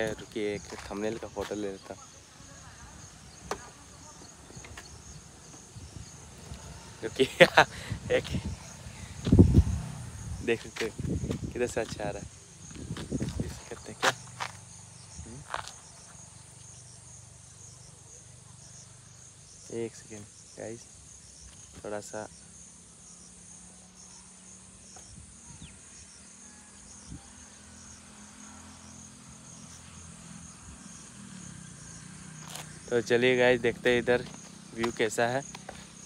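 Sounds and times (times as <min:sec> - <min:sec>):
insects chirping: 0:00.0 - 0:36.0.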